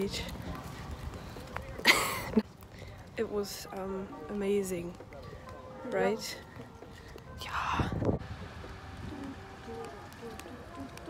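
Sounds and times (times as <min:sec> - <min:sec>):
low rumble of wind on microphone: 0:07.2 - 0:10.2.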